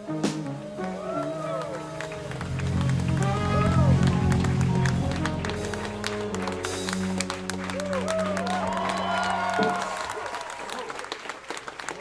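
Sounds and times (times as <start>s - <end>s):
drum and cymbal hits: 0.0s - 7.6s
sliding high tones: 0.5s - 10.2s
electric bass: 1.9s - 10.0s.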